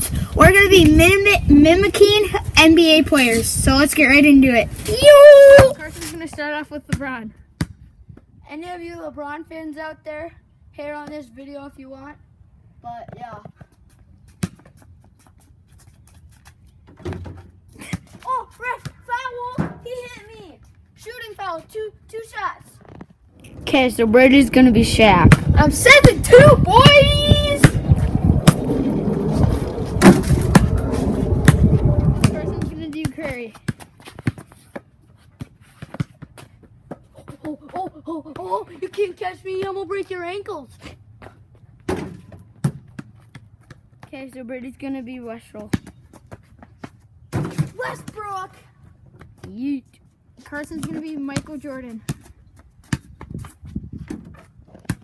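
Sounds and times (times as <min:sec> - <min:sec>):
boy calling out: 0:04.8 - 0:06.3, 0:17.8 - 0:22.7, 0:25.5 - 0:27.8, 0:37.2 - 0:40.7, 0:47.7 - 0:48.7
basketball bouncing on concrete: 0:05.6 - 0:07.8, 0:14.4 - 0:14.9, 0:23.5 - 0:28.7, 0:31.4 - 0:40.2, 0:41.8 - 0:48.4, 0:50.6 - 0:55.0.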